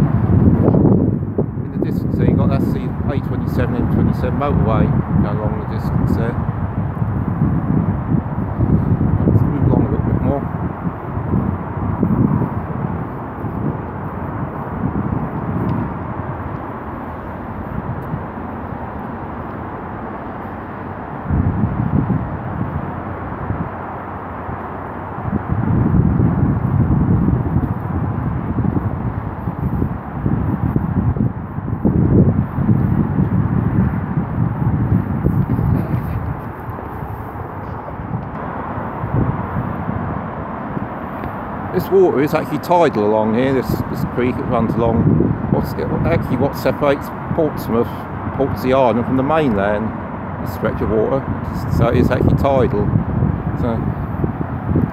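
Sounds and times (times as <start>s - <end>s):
distant motorway traffic: 0.0s - 54.9s
wind buffeting microphone: 0.0s - 54.9s.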